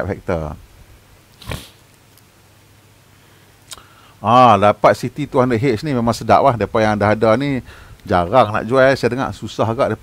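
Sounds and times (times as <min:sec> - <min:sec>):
faint background hum: 0:00.0 - 0:10.0
person breathing into microphone: 0:03.2 - 0:04.2, 0:07.6 - 0:08.0.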